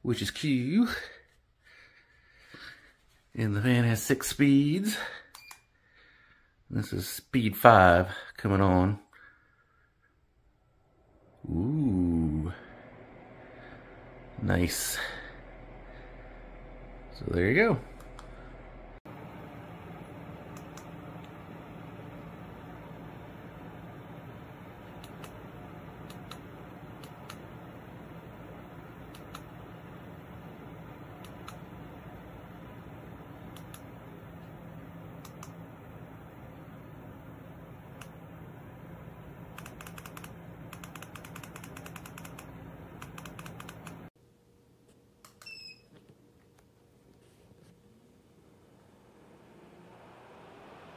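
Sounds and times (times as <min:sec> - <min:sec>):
low hum: 0:09.3 - 0:44.6, 0:46.9 - 0:50.9
ceiling fan whirring: 0:10.4 - 0:50.9
light clicks: 0:33.5 - 0:33.9, 0:35.2 - 0:35.6, 0:39.5 - 0:44.1.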